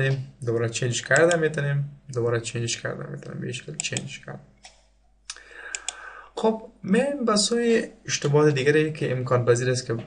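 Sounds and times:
computer mouse clicks: 0:01.1 - 0:01.4, 0:03.8 - 0:06.0.

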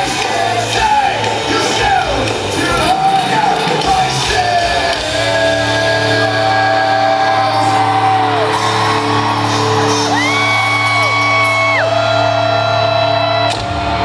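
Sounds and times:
person singing long notes: 0:00.0 - 0:11.8
bass guitar: 0:00.0 - 0:14.0
rock band playing live: 0:00.0 - 0:14.0
crowd whoops and yells: 0:05.5 - 0:14.0.

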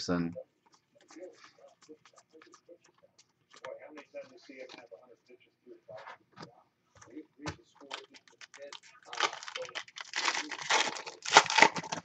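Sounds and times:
foil wrapper crackling: 0:07.8 - 0:12.0.

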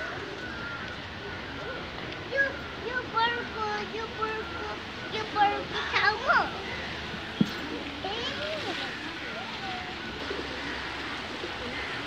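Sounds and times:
faint bird calls: 0:00.0 - 0:12.0
stream water rushing: 0:00.0 - 0:12.0.

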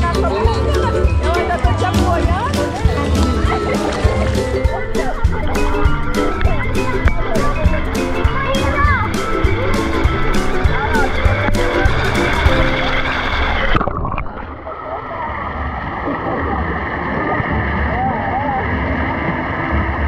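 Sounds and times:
music with a voice: 0:00.0 - 0:13.6
pool water sloshing and splashing: 0:01.5 - 0:06.6, 0:07.3 - 0:20.0.

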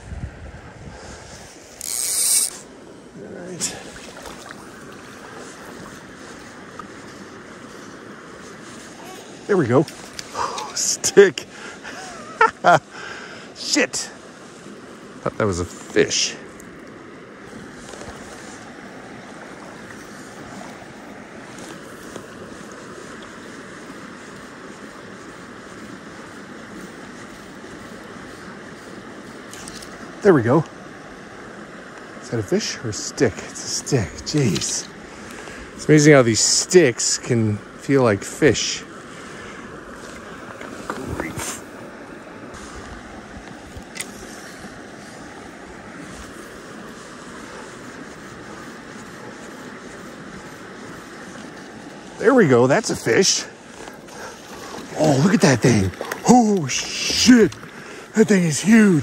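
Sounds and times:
creek water rushing over riffles: 0:01.2 - 0:59.0
fly reel clicker ratcheting: 0:01.7 - 0:02.6.

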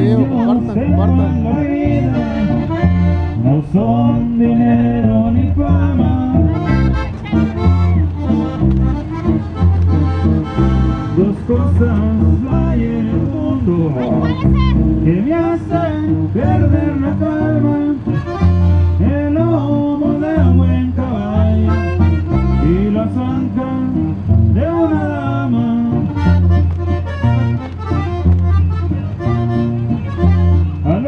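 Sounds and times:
accordion band music over speaker: 0:00.0 - 0:31.0.

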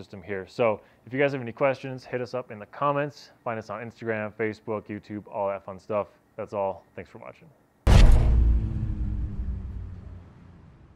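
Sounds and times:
deep boom with low rumble: 0:07.9 - 0:10.9.

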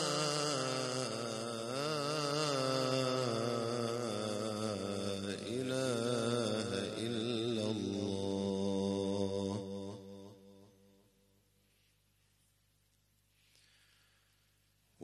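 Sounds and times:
man chanting recitation: 0:00.0 - 0:10.7.

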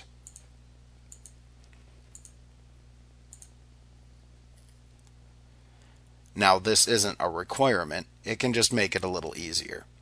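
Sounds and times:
low electrical hum: 0:00.0 - 0:10.0
computer mouse clicks: 0:00.2 - 0:00.5, 0:01.1 - 0:02.4, 0:03.3 - 0:03.6.

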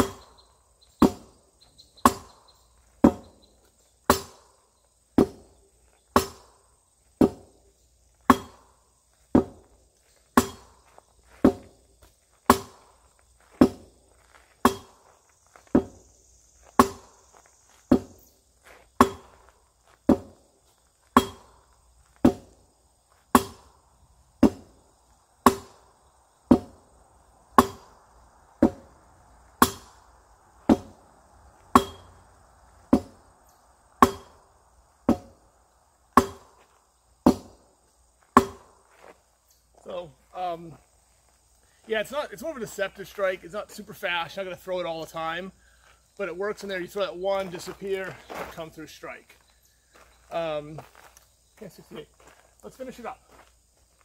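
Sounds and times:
sword striking rubber tyres: 0:00.0 - 0:16.0, 0:16.6 - 0:18.3, 0:18.9 - 0:22.6, 0:23.2 - 0:23.8, 0:24.4 - 0:24.8, 0:25.4 - 0:26.9, 0:27.5 - 0:31.0, 0:31.6 - 0:33.3, 0:34.0 - 0:35.5, 0:36.1 - 0:39.1.

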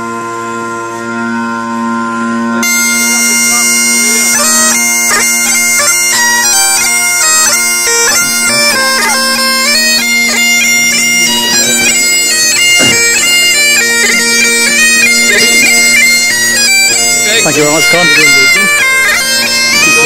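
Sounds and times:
bagpipe playing a tune: 0:00.0 - 0:20.0.

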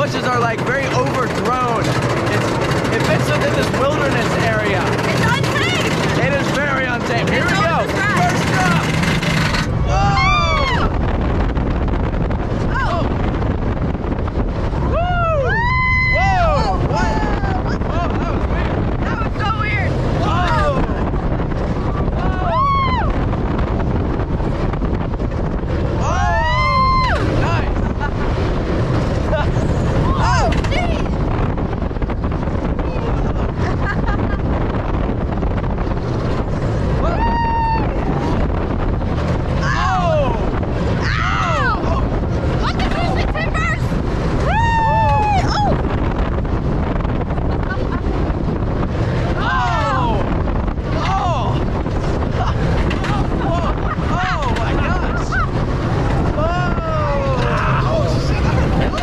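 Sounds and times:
roller coaster train on track: 0:00.0 - 0:59.0
wind rushing over microphone: 0:00.0 - 0:59.0
riders screaming: 0:09.8 - 0:11.0, 0:14.8 - 0:18.1, 0:22.0 - 0:23.3, 0:26.0 - 0:27.7, 0:37.0 - 0:38.4, 0:39.6 - 0:42.9, 0:44.4 - 0:45.9, 0:49.3 - 0:50.3.

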